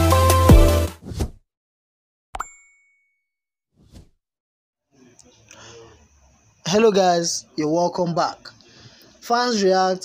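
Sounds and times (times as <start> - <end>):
music: 0.0 - 1.0
click with bright ding: 2.4 - 3.2.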